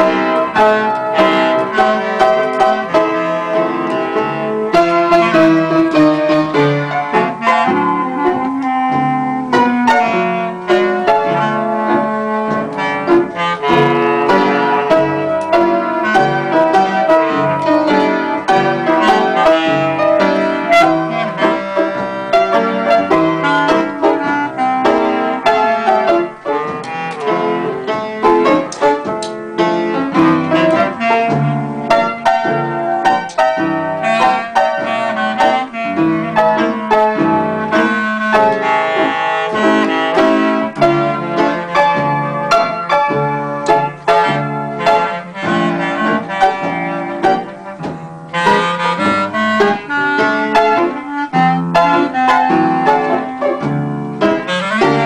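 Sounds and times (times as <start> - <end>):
piano and clarinet duet: 0.0 - 55.0.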